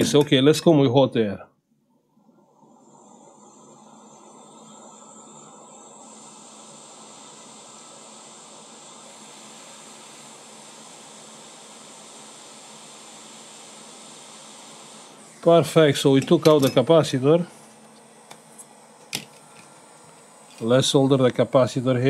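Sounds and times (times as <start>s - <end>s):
hot air blower hissing: 0.0s - 0.8s, 2.5s - 22.0s.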